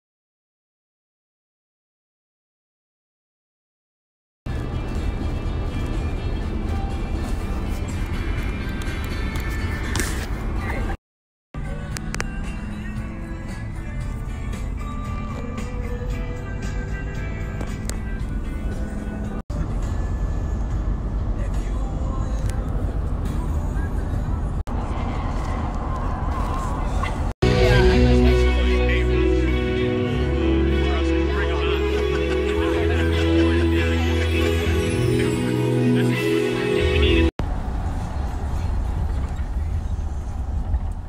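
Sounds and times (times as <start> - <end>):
music: 4.5 - 10.9, 11.6 - 24.4, 27.4 - 37.3
van driving rumble: 4.5 - 11.0, 11.6 - 41.0
indistinct voices: 21.4 - 37.3.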